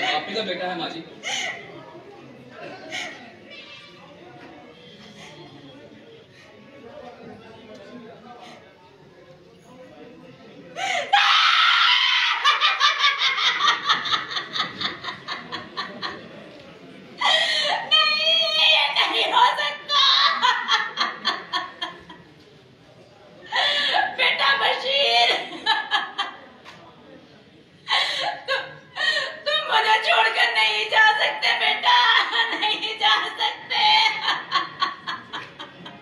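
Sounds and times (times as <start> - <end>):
woman screaming and wailing: 11.1 - 12.8
woman crying: 17.2 - 21.0, 27.9 - 34.9.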